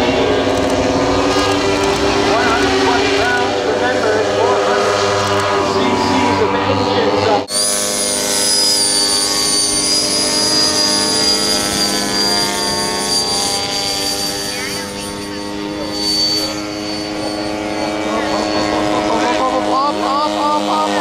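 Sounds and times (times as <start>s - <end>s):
jet turbine engine whine: 0.0s - 21.0s.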